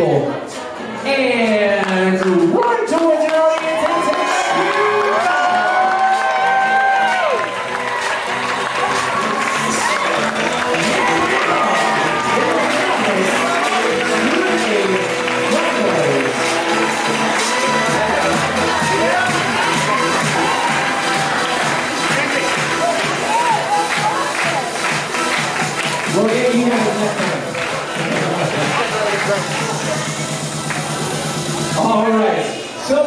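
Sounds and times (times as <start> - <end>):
crowd chattering: 0.0 - 2.8, 7.5 - 33.0
music playing: 0.0 - 32.8
people clapping: 1.4 - 31.8
crowd cheering: 2.2 - 32.4.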